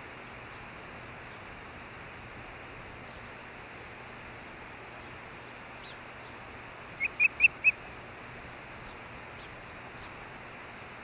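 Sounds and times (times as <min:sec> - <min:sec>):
steady background hiss: 0:00.0 - 0:11.0
osprey chirping calls: 0:07.0 - 0:07.8.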